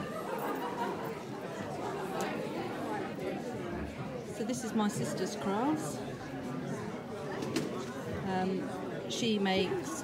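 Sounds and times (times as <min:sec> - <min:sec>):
chatter of many people: 0:00.0 - 0:10.0.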